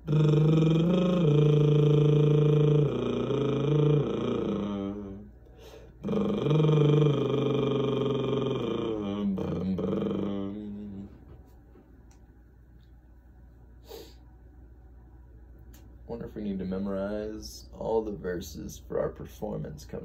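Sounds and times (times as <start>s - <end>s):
man humming: 0.0s - 11.6s
man breathing: 5.4s - 6.0s, 13.8s - 14.3s.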